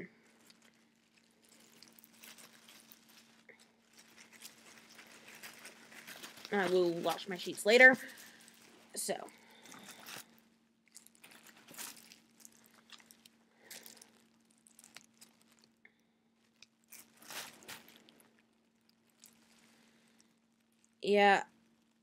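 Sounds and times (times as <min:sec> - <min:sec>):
low steady hum: 0:00.0 - 0:22.0
gloved hands rustling in hair: 0:00.3 - 0:15.8, 0:16.5 - 0:20.8.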